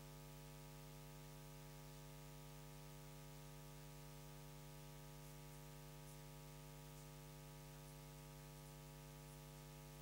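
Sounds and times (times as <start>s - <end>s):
faint electrical hum: 0.0s - 10.0s
light hiss: 1.8s - 10.0s.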